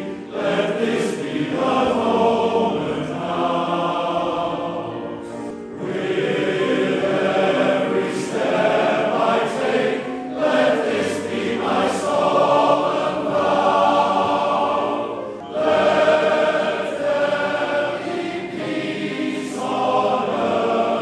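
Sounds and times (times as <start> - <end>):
male voice choir singing: 0.0 - 21.0.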